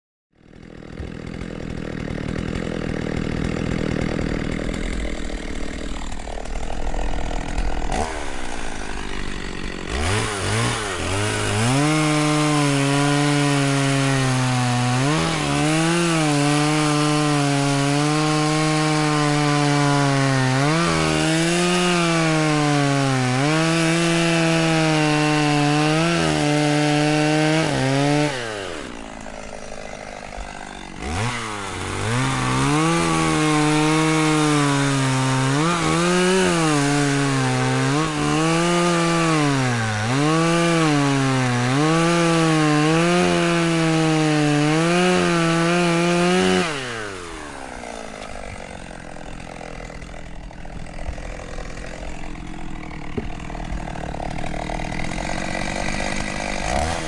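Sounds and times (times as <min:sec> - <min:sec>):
chainsaw cutting logs: 0:00.4 - 0:57.0.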